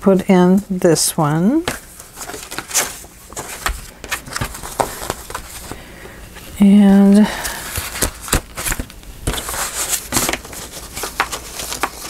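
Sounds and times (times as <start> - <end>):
paper rustling: 1.7 - 5.8, 6.8 - 12.0.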